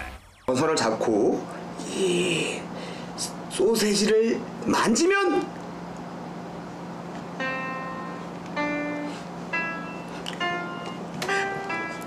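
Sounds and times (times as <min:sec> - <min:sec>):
piano note ringing: 0:07.4 - 0:12.0.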